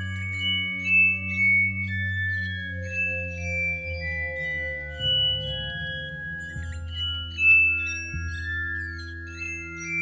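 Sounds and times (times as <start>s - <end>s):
chime-like tones: 0.0s - 10.0s.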